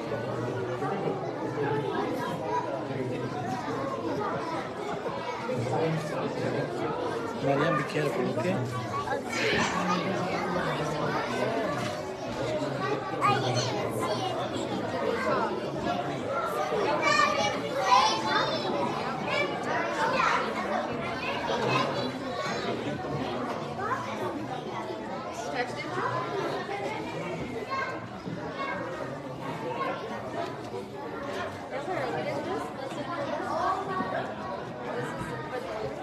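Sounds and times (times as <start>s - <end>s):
children calling: 0.0s - 36.0s
crowd chattering in a hall: 0.0s - 36.0s.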